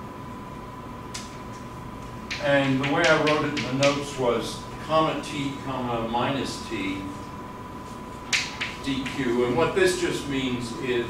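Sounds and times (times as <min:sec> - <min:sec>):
chalk tapping on blackboard: 0:02.3 - 0:04.0, 0:08.3 - 0:08.8.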